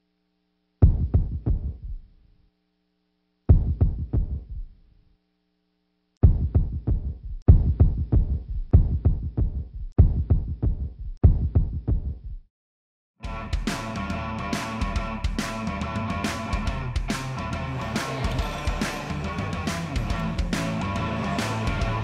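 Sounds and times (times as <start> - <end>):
faint steady hum: 0.0 - 0.9.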